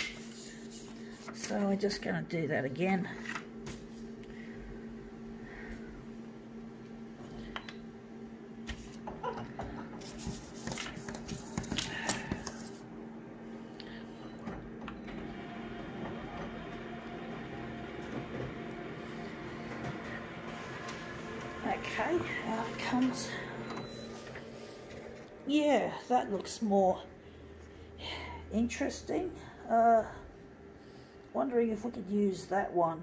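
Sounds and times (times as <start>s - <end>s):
photocopier humming: 3.2s - 28.0s
photocopier whirring: 8.6s - 26.0s
paper rustling: 10.0s - 12.8s.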